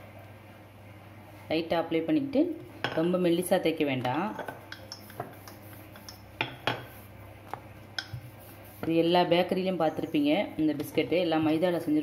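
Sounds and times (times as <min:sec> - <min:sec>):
woman speaking: 0:01.5 - 0:04.5, 0:08.8 - 0:12.0.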